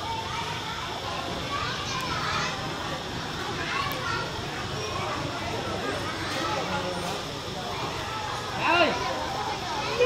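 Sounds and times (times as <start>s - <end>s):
background hubbub: 0.0s - 10.0s
children's voices: 0.0s - 10.0s
people talking: 0.0s - 10.0s.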